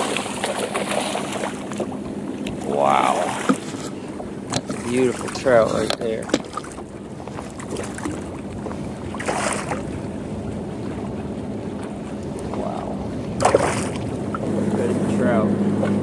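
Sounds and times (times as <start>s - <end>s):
fish splashing at surface: 0.0s - 1.9s, 9.2s - 9.8s, 13.4s - 14.2s
low steady hum: 0.0s - 16.0s
water lapping at hull: 0.0s - 16.0s
wind: 0.0s - 16.0s.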